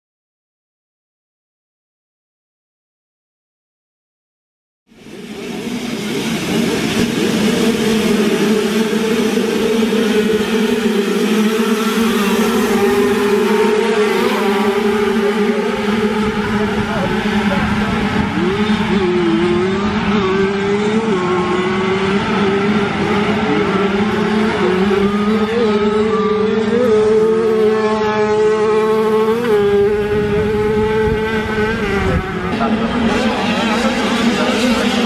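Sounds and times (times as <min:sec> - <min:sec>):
motocross bike engines revving: 0:05.0 - 0:35.0.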